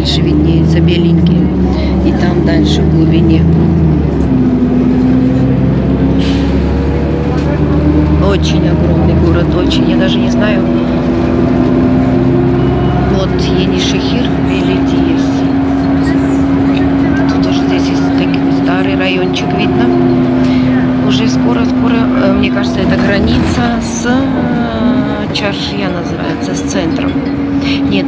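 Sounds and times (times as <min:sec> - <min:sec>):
background voices: 0:00.0 - 0:28.0
bus engine drone: 0:00.0 - 0:28.0.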